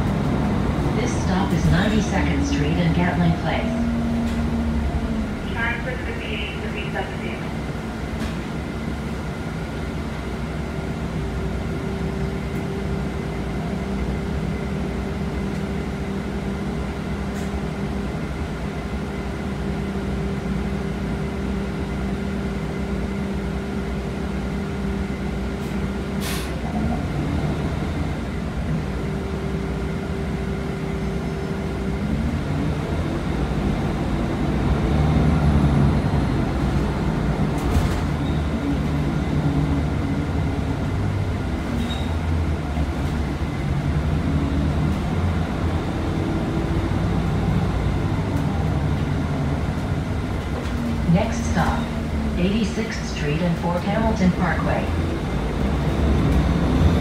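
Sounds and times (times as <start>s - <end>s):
bus drivetrain noise: 0.0s - 57.0s
bus engine humming: 0.0s - 57.0s.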